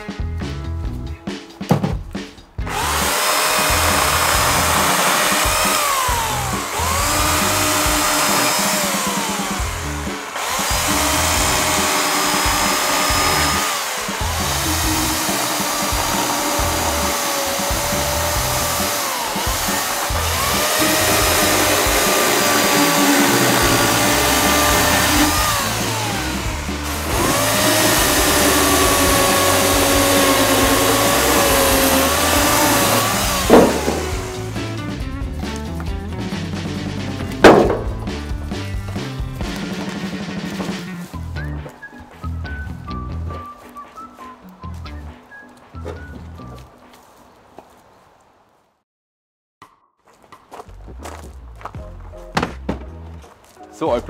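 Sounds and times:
electric chainsaw cutting branch: 2.7s - 34.8s.

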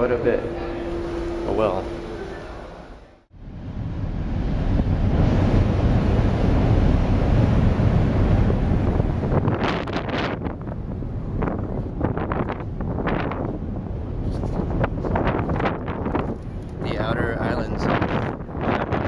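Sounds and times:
wind buffeting microphone: 3.4s - 19.0s.

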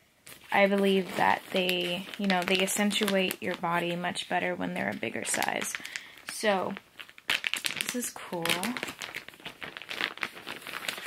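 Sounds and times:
plastic bag crinkling: 0.2s - 11.0s.

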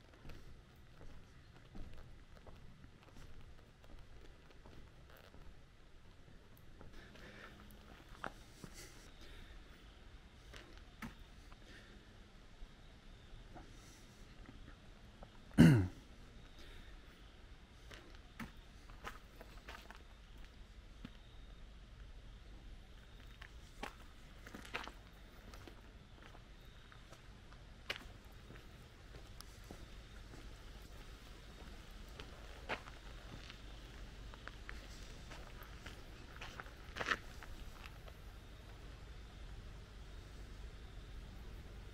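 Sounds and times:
footsteps on pavement: 0.0s - 5.6s, 17.8s - 21.2s, 23.1s - 38.8s
person coughing: 15.6s - 16.0s
low steady rumble: 27.2s - 41.9s.

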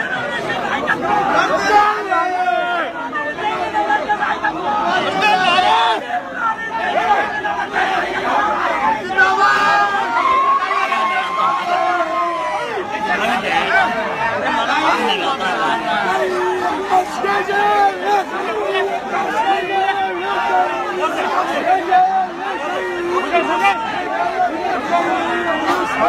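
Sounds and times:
crowd talking and calling out: 0.0s - 26.0s.

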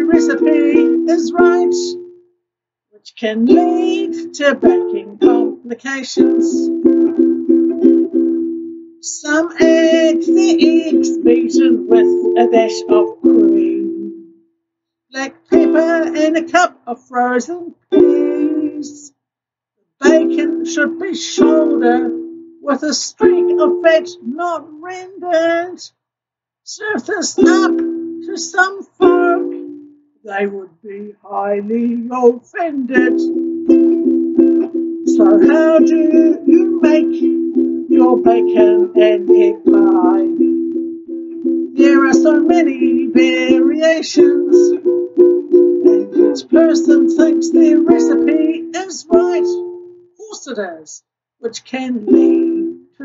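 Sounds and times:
ukulele strumming: 0.0s - 2.3s, 3.4s - 14.4s, 15.2s - 16.8s, 17.4s - 19.1s, 20.0s - 25.5s, 27.0s - 29.9s, 31.7s - 50.1s, 52.0s - 53.0s.

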